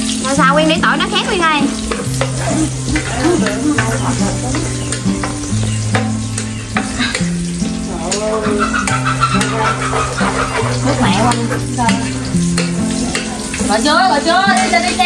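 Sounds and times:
garlic sizzling in hot oil: 0.0s - 15.0s
metal ladle scraping pan: 0.1s - 13.8s.

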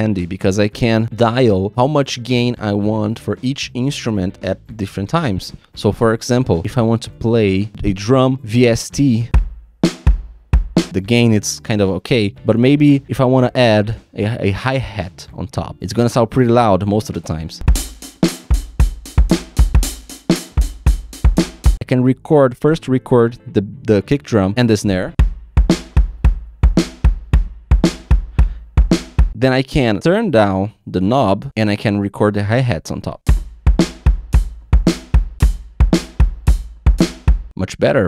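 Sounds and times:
snare and cymbal hits: 9.3s - 11.0s, 17.7s - 21.8s, 25.2s - 29.4s, 33.3s - 37.5s
kick drum: 9.4s - 10.9s, 17.7s - 21.8s, 25.2s - 29.4s, 33.3s - 37.5s.

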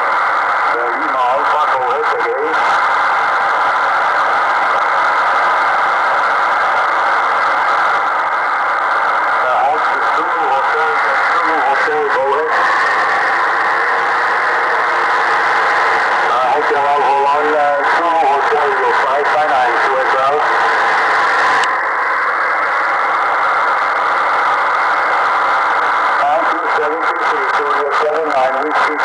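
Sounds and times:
radio band noise hiss: 0.0s - 29.0s
weak radio voice: 0.6s - 2.9s, 9.4s - 12.8s, 16.1s - 20.6s, 26.2s - 29.0s.

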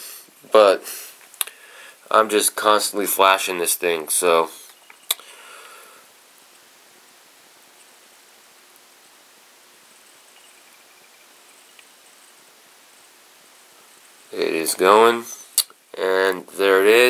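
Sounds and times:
room tone hiss: 0.0s - 17.0s.

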